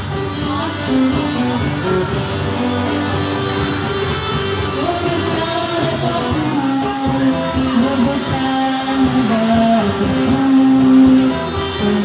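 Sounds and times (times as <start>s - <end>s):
cajon: 0.0s - 12.0s
strummed acoustic guitars: 0.0s - 12.0s.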